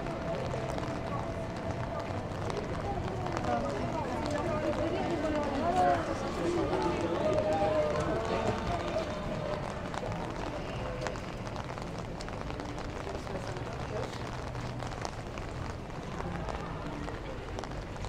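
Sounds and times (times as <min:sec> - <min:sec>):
passers-by talking: 0:00.0 - 0:18.0
street noise: 0:00.0 - 0:18.0.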